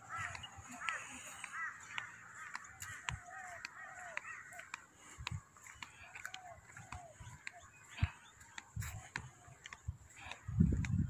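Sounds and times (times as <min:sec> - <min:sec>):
birds chirping: 0:00.0 - 0:11.0
footsteps on paved path: 0:00.0 - 0:11.0.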